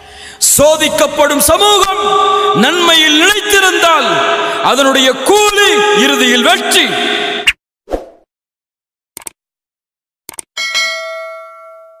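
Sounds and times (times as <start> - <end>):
bell chime: 10.6 - 12.0.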